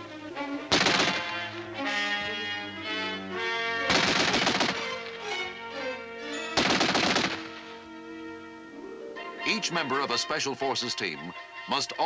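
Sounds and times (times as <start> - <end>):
background music: 0.0 - 12.0
machine gun bursts: 0.7 - 1.4, 3.9 - 5.0, 6.6 - 7.5.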